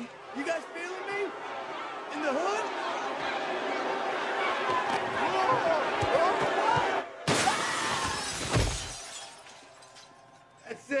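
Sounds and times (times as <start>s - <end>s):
glass shattering: 7.3s - 10.4s.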